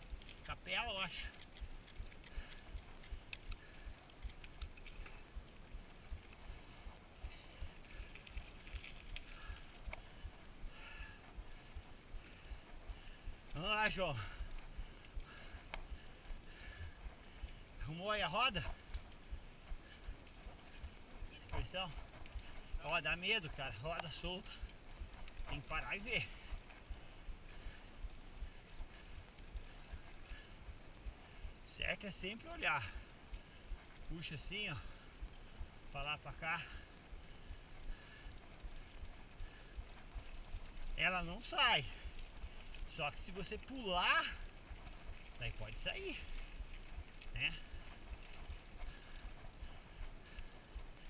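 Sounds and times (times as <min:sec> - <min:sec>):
bike tyres rumbling on dirt: 0:00.0 - 0:51.0
wind: 0:00.0 - 0:51.0.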